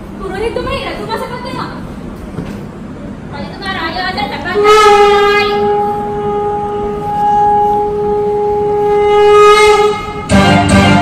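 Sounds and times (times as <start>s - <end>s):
horn long steady note: 4.5s - 11.0s.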